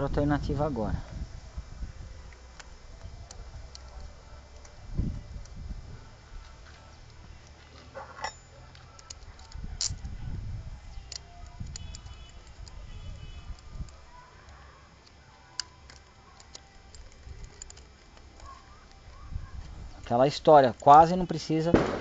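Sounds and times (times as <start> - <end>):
light metallic clicks of tools: 2.3 - 5.6, 6.4 - 10.2, 10.8 - 12.9, 13.5 - 21.1.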